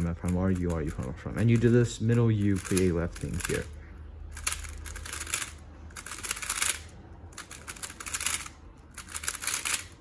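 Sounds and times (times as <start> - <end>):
puzzle cube clicking: 2.6 - 3.7, 4.4 - 10.0.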